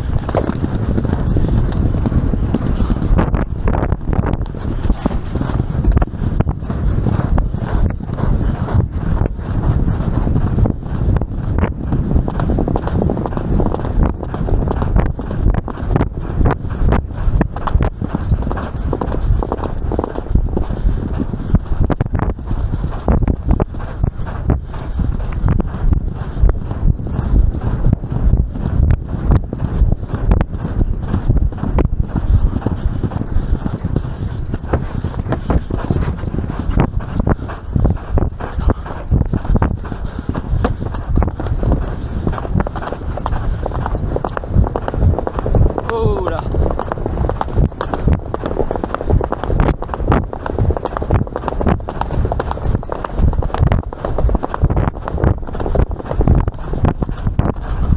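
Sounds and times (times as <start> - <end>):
horse hoofbeats on turf: 0.0 - 57.9
low rumble: 0.0 - 57.9.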